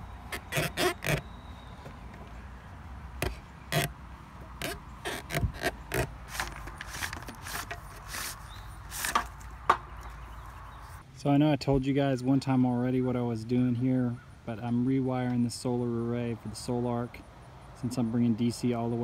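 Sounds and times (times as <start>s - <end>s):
scraping and rustling strokes: 4.5s - 11.0s.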